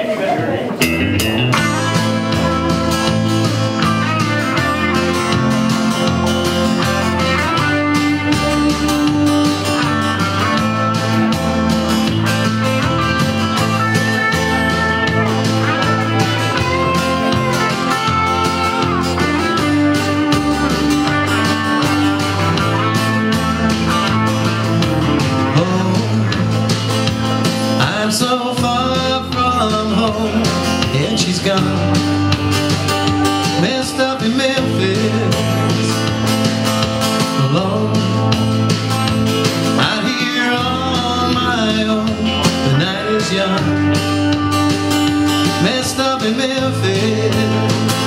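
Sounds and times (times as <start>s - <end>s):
electric guitar: 0.0s - 48.0s
steady beat and bass line: 0.8s - 48.0s
man singing: 25.3s - 26.9s, 27.6s - 32.4s, 33.2s - 36.3s, 37.1s - 38.8s, 39.6s - 44.4s, 45.1s - 48.0s.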